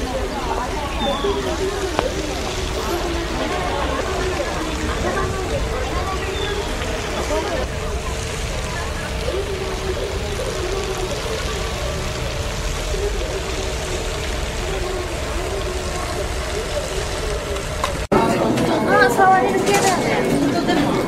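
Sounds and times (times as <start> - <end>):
wind rumbling on microphone: 0.0 - 18.1
faint distant voices: 0.0 - 21.0.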